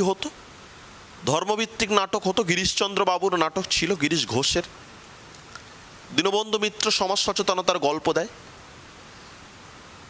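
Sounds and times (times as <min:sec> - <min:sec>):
man speaking: 0:00.0 - 0:00.4, 0:01.2 - 0:04.8, 0:06.1 - 0:08.4
steady background hiss: 0:00.0 - 0:10.0.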